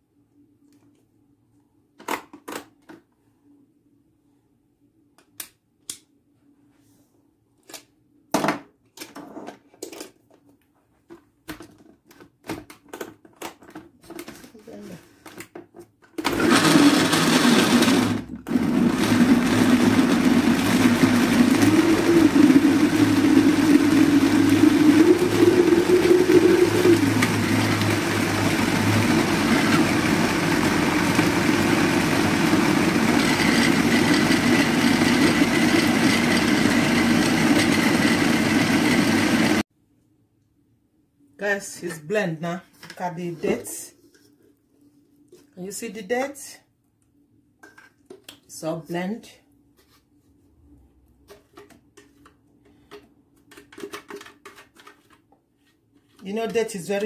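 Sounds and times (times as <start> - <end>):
blender motor running: 16.2 - 39.6.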